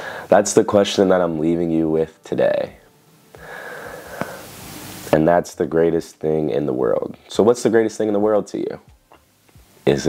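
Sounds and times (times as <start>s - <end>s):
man breathing in: 0.0s - 0.3s, 3.3s - 4.6s.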